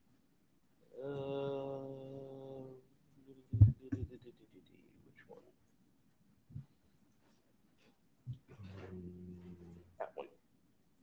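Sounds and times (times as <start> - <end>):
person humming a low note: 1.0 - 2.8.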